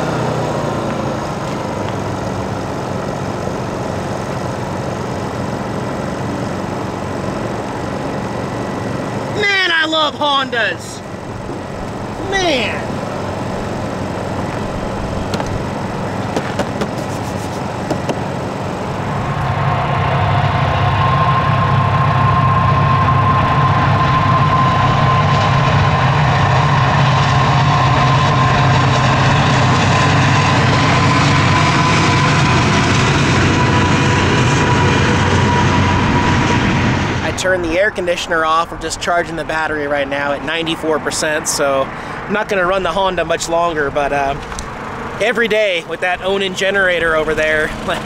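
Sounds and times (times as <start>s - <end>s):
portable generator running: 0.0s - 48.0s
freight train rumbling past: 1.7s - 17.0s, 17.6s - 48.0s
thin high whine: 6.1s - 41.8s.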